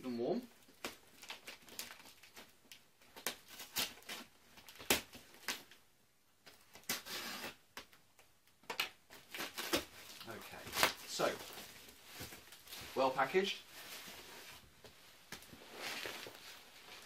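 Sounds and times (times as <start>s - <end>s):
packing tape peeling off cardboard: 3.2s - 5.8s, 6.7s - 7.6s, 8.7s - 11.1s
tape tearing rasp: 6.8s - 7.6s.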